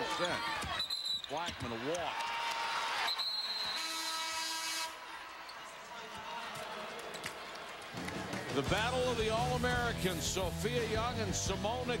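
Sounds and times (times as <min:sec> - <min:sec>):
arena horn blaring: 0:03.8 - 0:05.0.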